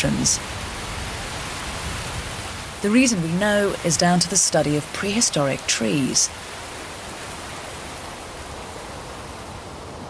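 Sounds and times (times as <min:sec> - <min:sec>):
heavy rain: 0:00.0 - 0:10.0.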